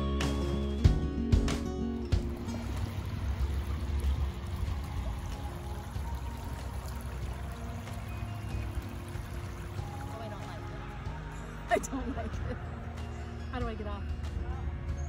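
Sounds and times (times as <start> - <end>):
faint background music: 0.0 - 15.0
creek water trickling over rock: 2.0 - 12.1.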